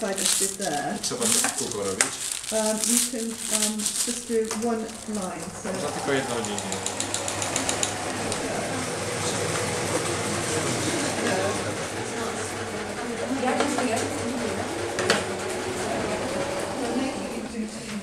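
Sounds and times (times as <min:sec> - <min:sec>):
sewing machine stitching: 0:00.0 - 0:17.6
people chattering: 0:00.0 - 0:18.0.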